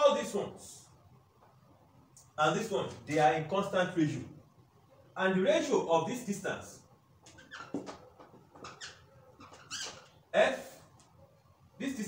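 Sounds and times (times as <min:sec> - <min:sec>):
marker squeaking on whiteboard: 0:07.1 - 0:11.5.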